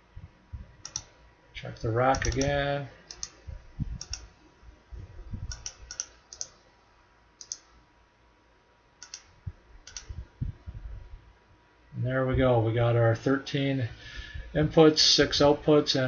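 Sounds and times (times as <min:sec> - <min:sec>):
computer mouse clicking: 0:00.8 - 0:01.2, 0:02.1 - 0:03.4, 0:04.0 - 0:04.3, 0:05.5 - 0:06.6, 0:07.4 - 0:07.7, 0:09.0 - 0:10.2.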